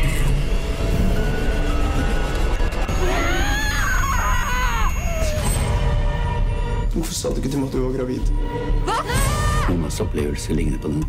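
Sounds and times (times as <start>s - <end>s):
low rumbling drone: 0.0s - 6.9s
woman screaming: 2.9s - 5.5s, 8.9s - 9.7s.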